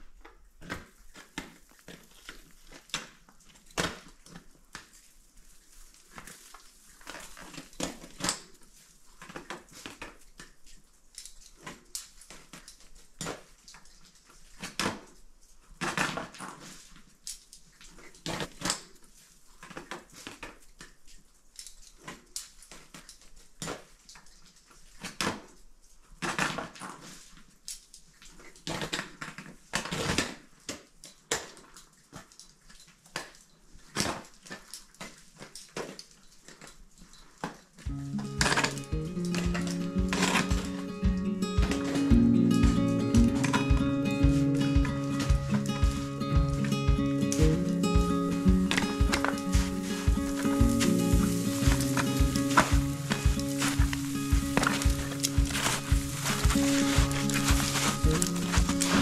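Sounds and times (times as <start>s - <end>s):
climbing gear clicks and knocks: 6.2s - 59.0s
boots crunching on snow and rock: 37.9s - 59.0s.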